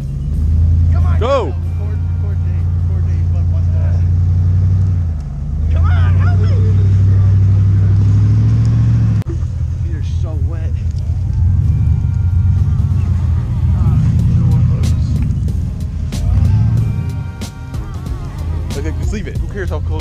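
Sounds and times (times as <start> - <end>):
pickup truck engine revving: 0.0 - 20.0.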